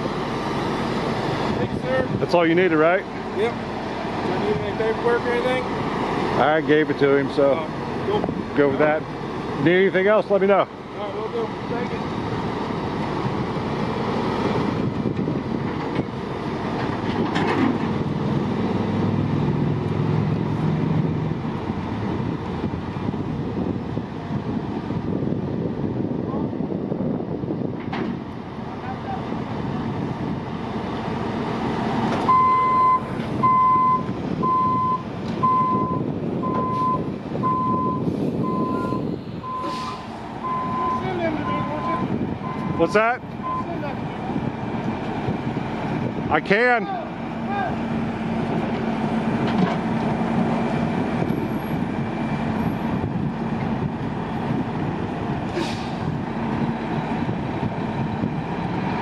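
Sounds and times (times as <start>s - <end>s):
diesel truck engines running: 0.0s - 59.0s
backup alarm beeping: 32.3s - 43.7s.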